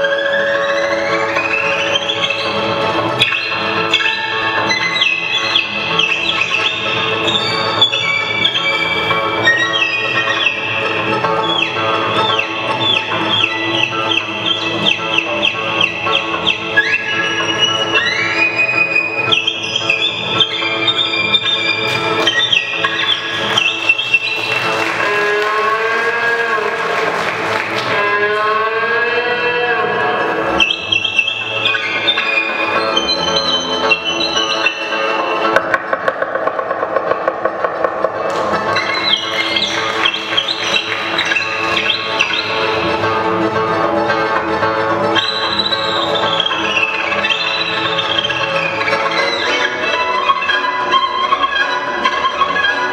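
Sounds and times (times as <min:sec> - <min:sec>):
accordion: 0:00.0 - 0:28.0, 0:37.4 - 0:52.9
double bass: 0:00.0 - 0:52.9
violin with sliding notes: 0:00.0 - 0:52.9.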